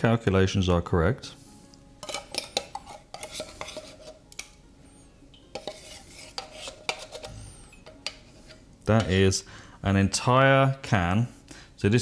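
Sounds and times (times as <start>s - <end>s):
spoon scraping metal can: 2.0s - 4.5s, 5.5s - 9.2s.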